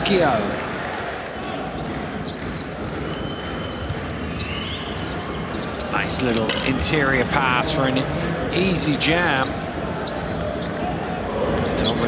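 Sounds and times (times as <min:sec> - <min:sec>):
crowd noise: 0:00.0 - 0:12.0
sneaker squeaks: 0:01.8 - 0:06.8, 0:09.4 - 0:12.0.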